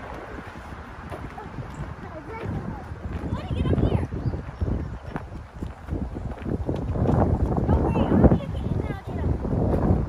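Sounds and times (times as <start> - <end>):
running footsteps on mulch: 0.0 - 10.0
child's voice: 1.3 - 4.2, 7.7 - 9.4.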